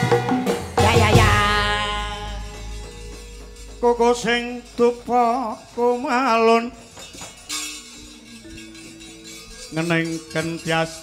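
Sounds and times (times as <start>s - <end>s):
woman singing ornamented phrase: 0.8s - 2.7s
soft held gamelan notes: 1.1s - 6.0s.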